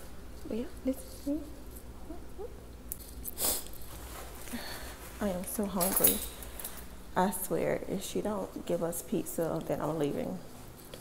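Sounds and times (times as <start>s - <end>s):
steady low hum: 0.0s - 11.0s
rustling: 3.1s - 7.0s.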